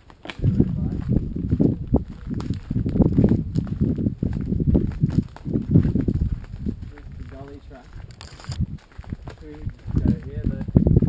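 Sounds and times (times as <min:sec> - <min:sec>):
footsteps on dirt: 0:00.0 - 0:11.0.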